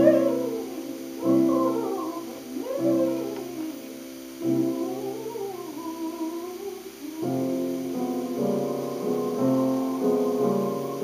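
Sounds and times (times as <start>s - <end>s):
soprano singing: 0.0s - 11.0s
sustained piano chord: 7.0s - 11.0s.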